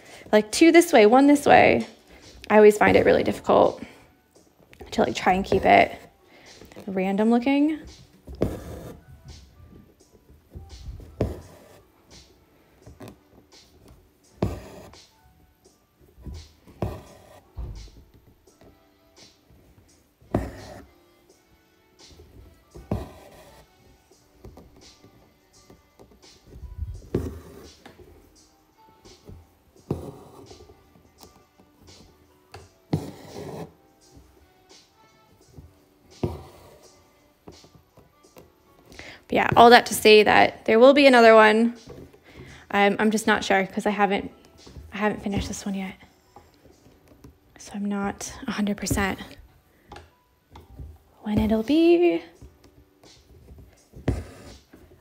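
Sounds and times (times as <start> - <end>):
soft background music: 0.0 - 55.0.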